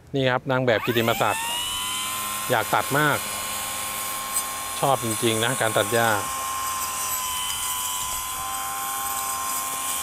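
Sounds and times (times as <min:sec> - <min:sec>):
brush cutter motor whining: 0:00.7 - 0:10.0.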